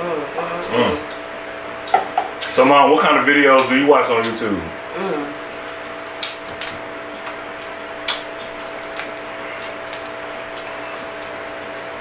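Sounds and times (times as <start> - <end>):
low room hum: 0.0 - 12.0
crab shell cracking by hand: 5.5 - 11.4.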